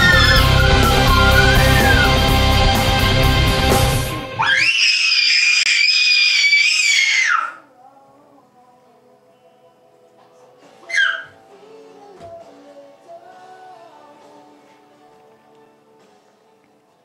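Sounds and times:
child squealing: 0.0s - 2.1s, 4.4s - 7.6s, 10.8s - 11.4s
faint background music: 7.2s - 17.0s.

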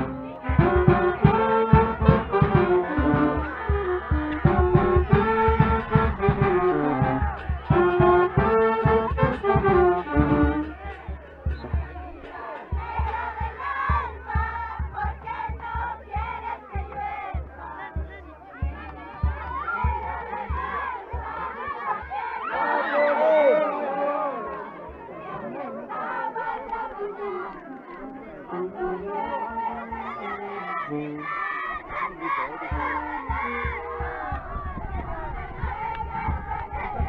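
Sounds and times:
brass band melody: 0.0s - 17.8s, 25.9s - 35.4s
steady drum beat: 0.0s - 22.7s, 31.9s - 37.0s
crowd chanting and shouting: 0.0s - 37.0s.

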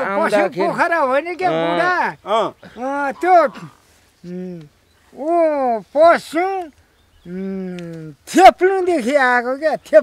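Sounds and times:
man speaking drawn-out phrases: 0.0s - 6.7s, 7.3s - 10.0s.

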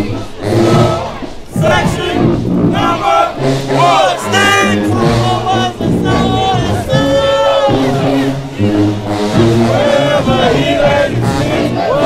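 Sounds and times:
marching band members shouting a chant: 0.0s - 12.0s.

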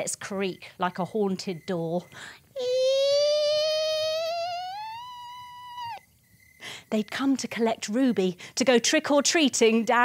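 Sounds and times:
woman imitating creaking door: 2.6s - 6.0s.

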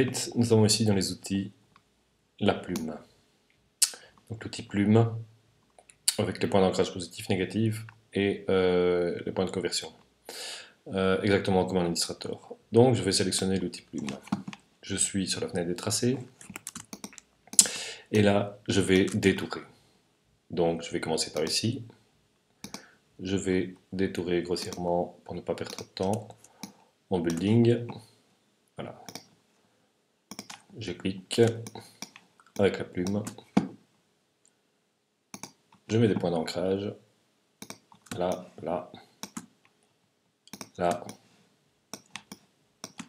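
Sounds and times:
computer mouse clicks: 16.4s - 17.7s, 22.6s - 22.9s, 24.6s - 24.8s, 25.7s - 27.5s, 29.1s - 29.3s, 30.3s - 30.7s, 31.4s - 33.4s, 35.3s - 35.8s, 37.6s - 38.5s, 39.2s - 39.5s, 40.5s - 41.2s, 41.9s - 43.0s
keyboard keys clicking: 30.3s - 30.6s, 41.9s - 43.0s.

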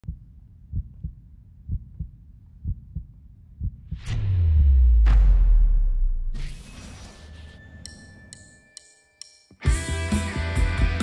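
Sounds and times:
heartbeat thumps: 0.0s - 5.8s.

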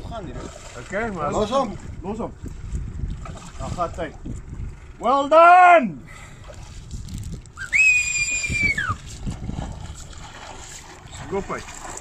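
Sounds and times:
water splashing: 0.0s - 4.5s, 6.4s - 12.0s
loud high whistle: 7.6s - 9.0s.

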